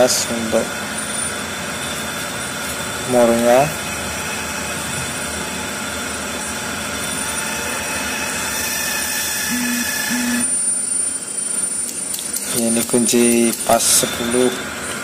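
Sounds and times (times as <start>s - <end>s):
steady mechanical drone: 0.0s - 15.0s.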